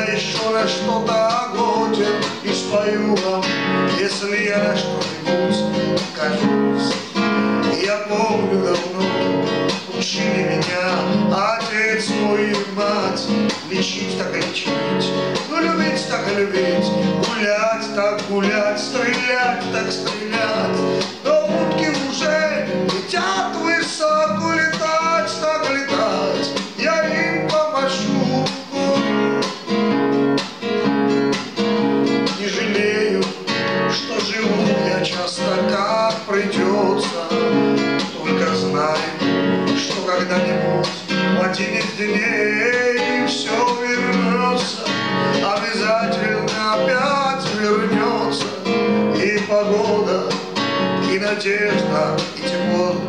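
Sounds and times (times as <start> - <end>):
man singing: 0.0 - 53.0
strummed classical guitar: 0.0 - 53.0.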